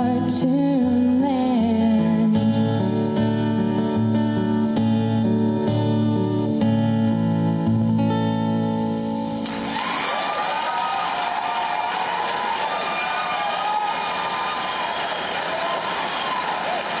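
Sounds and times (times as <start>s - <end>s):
acoustic guitar chord: 0.0s - 9.7s
audience applauding and cheering: 9.4s - 17.0s.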